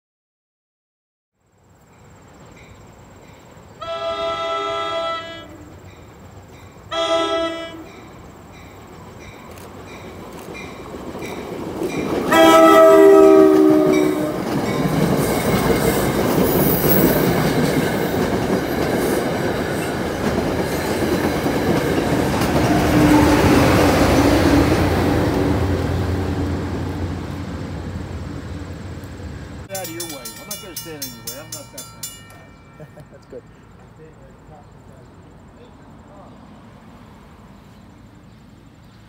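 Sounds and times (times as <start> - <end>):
train wheel and rail noise: 1.5 - 39.0
train horn blast: 3.8 - 5.8, 6.9 - 8.0, 12.3 - 14.5, 22.7 - 23.8.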